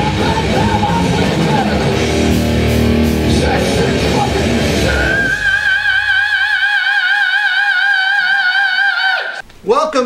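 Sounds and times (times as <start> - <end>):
man singing long high note: 0.0 - 2.0, 3.2 - 9.4
metal band playing: 0.0 - 6.2.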